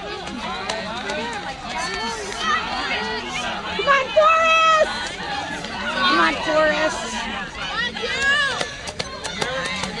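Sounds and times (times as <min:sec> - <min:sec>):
spectators calling out and talking: 0:00.0 - 0:10.0.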